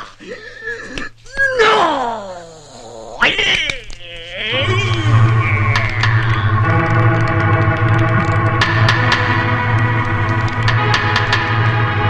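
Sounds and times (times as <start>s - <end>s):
low drone: 4.4s - 12.0s
film soundtrack held chord: 4.6s - 12.0s.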